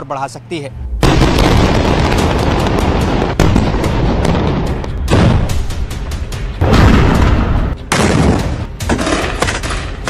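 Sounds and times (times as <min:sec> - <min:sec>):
sudden blast: 0:00.9 - 0:08.8
explosions rumbling and crackling: 0:01.0 - 0:09.7.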